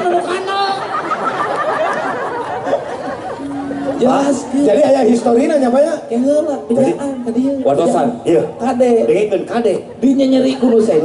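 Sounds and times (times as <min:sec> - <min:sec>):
chatter of voices: 0:00.0 - 0:11.0
faint music: 0:03.1 - 0:11.0.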